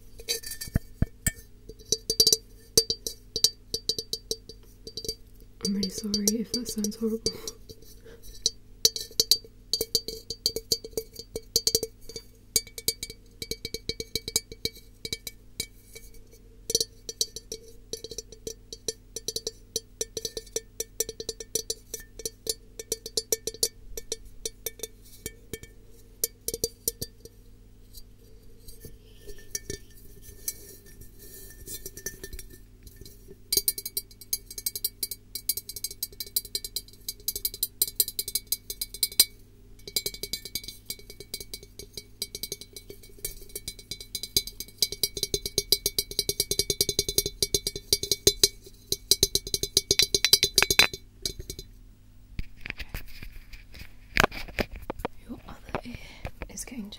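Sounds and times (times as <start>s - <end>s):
fingertips tapping on glass: 0.2s - 51.7s.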